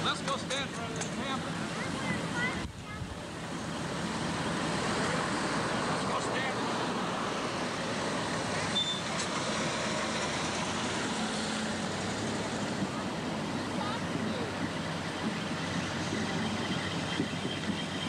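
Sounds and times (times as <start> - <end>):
vehicles rolling past slowly: 0.0 - 18.0.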